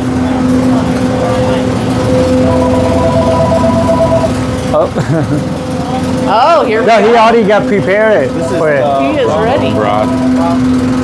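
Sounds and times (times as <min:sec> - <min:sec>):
kitchen machinery humming: 0:00.0 - 0:11.0
higher steady tones: 0:01.1 - 0:04.8, 0:05.5 - 0:11.0.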